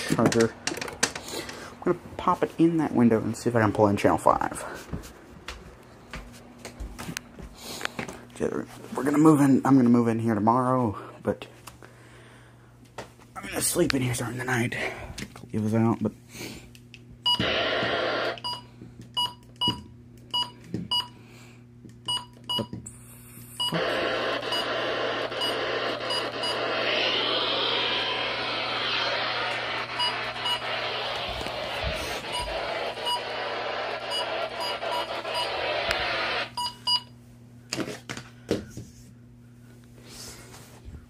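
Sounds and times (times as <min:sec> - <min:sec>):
radio static hiss: 0:17.4 - 0:18.4, 0:23.7 - 0:36.6.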